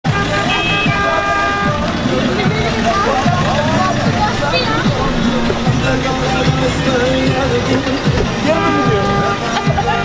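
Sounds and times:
car horn: 0.0 - 5.2, 8.2 - 10.0
people's voices: 0.1 - 10.0.

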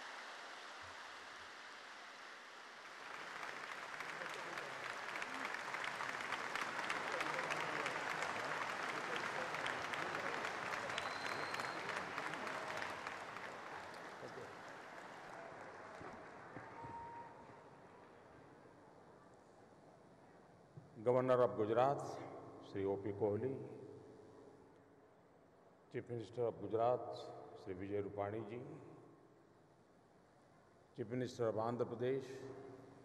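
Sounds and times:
large audience applauding: 0.0 - 18.2.

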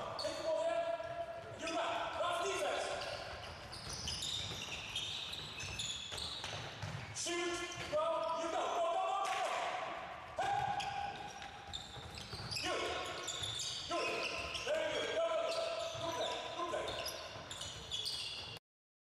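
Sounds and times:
players' voices: 0.0 - 3.5, 7.2 - 11.4, 12.5 - 17.2
ball bouncing on hall floor: 0.8 - 18.6
high-pitched shoe squeaks: 2.8 - 7.1, 10.7 - 18.6.

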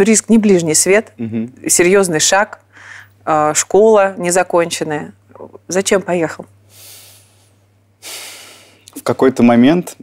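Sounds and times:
man speaking: 1.2 - 1.5
man breathing: 6.7 - 8.9.

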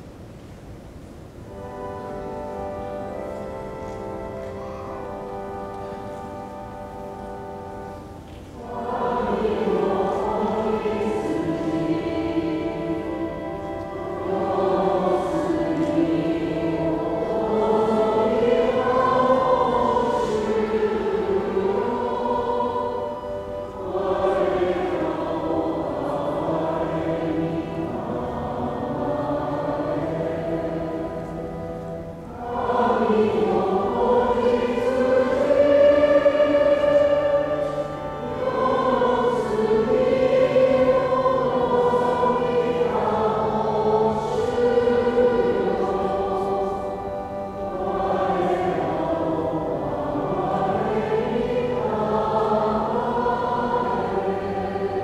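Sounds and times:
choir singing a hymn: 1.2 - 55.0.

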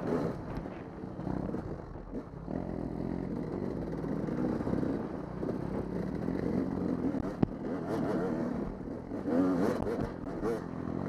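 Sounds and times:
dirt bike engine running: 0.0 - 11.0.

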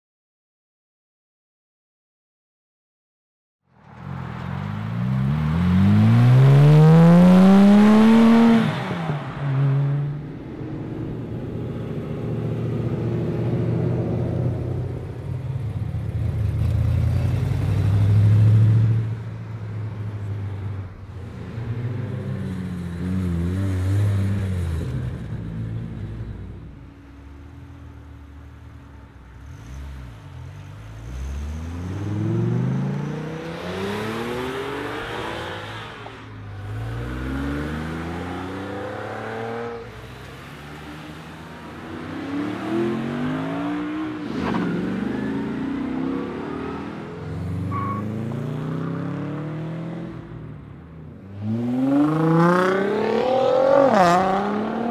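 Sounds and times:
car engines rumbling and revving: 3.7 - 54.9.

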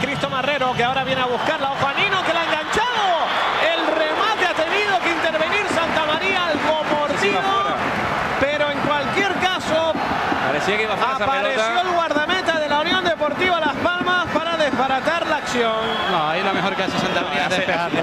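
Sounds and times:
men talking: 0.0 - 18.0
stadium crowd noise: 0.0 - 18.0.

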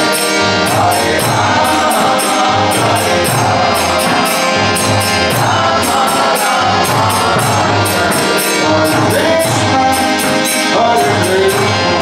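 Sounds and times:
harmonium playing chords: 0.0 - 12.0
high bright percussive strikes: 0.0 - 12.0
voices singing along: 0.0 - 12.0.

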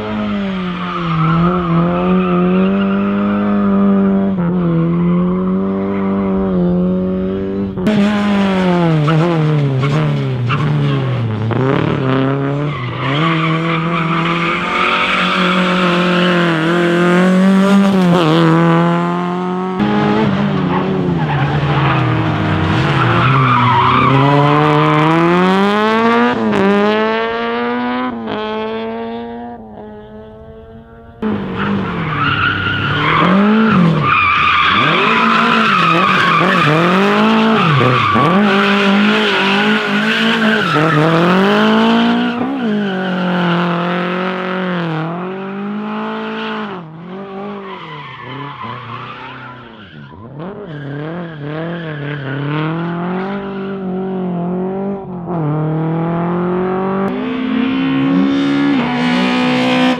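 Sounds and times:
rally car engines revving: 0.0 - 59.9
tyres squealing on concrete: 12.7 - 16.4, 22.9 - 24.4, 31.9 - 41.4.

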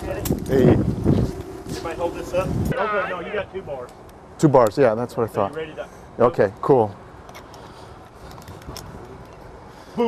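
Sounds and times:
outdoor background noise: 0.0 - 10.0.

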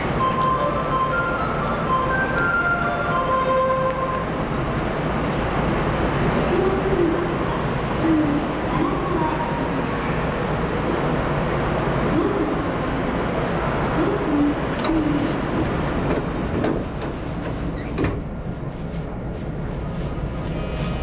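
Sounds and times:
electric train hum: 0.0 - 21.0
station ambience: 0.0 - 21.0.

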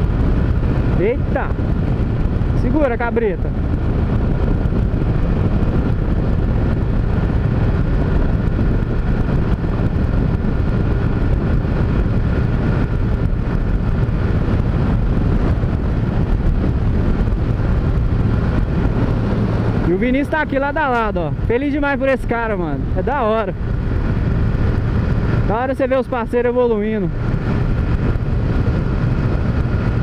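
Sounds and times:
motorcycle engine cruising: 0.0 - 30.0
wind rushing over microphone: 0.0 - 30.0.

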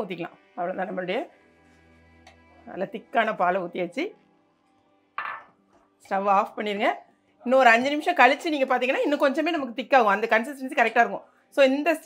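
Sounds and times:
woman speaking: 6.1 - 12.0.

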